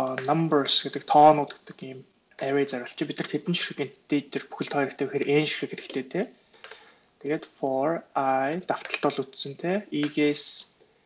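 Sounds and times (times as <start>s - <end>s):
keyboard typing clicks: 0.0s - 2.0s, 5.9s - 7.1s, 8.5s - 9.2s
man talking: 0.0s - 6.4s, 7.2s - 10.8s.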